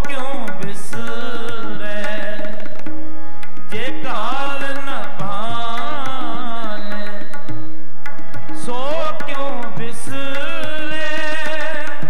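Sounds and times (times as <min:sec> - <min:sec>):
person singing: 0:00.0 - 0:02.7, 0:03.7 - 0:07.4, 0:08.6 - 0:12.0
harmonium chords: 0:00.0 - 0:12.0
tabla strokes: 0:00.0 - 0:12.0.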